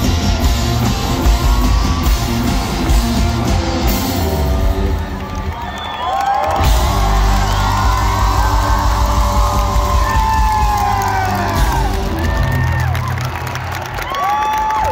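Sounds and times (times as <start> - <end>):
live rock band: 0.0 - 5.8, 6.4 - 13.7
crowd cheering and clapping: 0.0 - 14.9.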